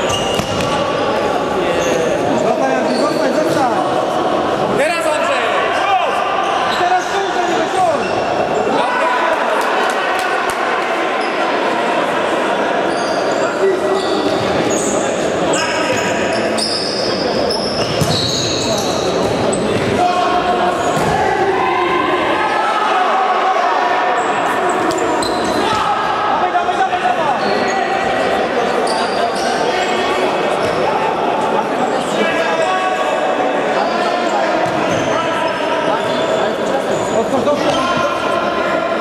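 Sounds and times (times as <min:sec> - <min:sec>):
shoes squeaking on court: 0:00.0 - 0:00.8, 0:15.9 - 0:19.9, 0:24.7 - 0:25.8
ball bouncing on hall floor: 0:00.1 - 0:00.8, 0:17.8 - 0:18.4
players shouting: 0:04.2 - 0:16.6, 0:19.5 - 0:36.3.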